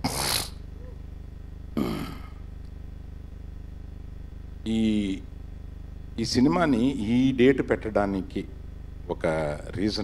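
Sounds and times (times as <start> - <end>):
low sound system hum: 0.0 - 10.0
man speaking: 4.7 - 5.3, 6.2 - 8.5, 9.1 - 10.0.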